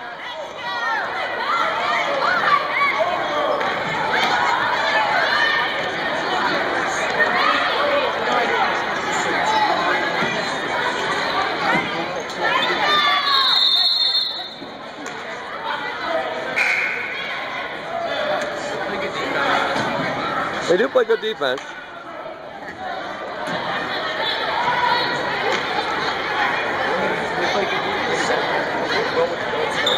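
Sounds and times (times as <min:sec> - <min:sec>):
spectators chattering: 0:00.0 - 0:29.9
short high whistle: 0:13.4 - 0:14.7, 0:16.6 - 0:17.1.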